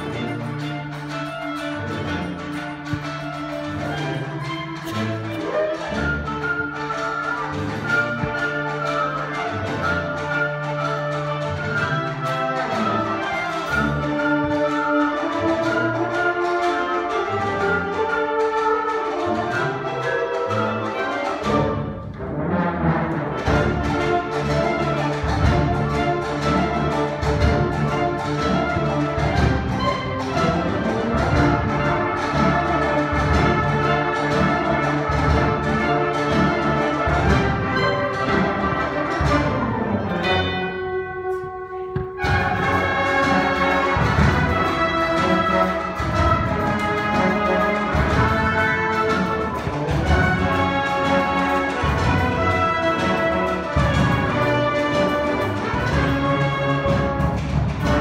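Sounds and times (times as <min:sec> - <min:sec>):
symphonic band playing: 0:00.0 - 0:58.0
low drums: 0:21.4 - 0:58.0.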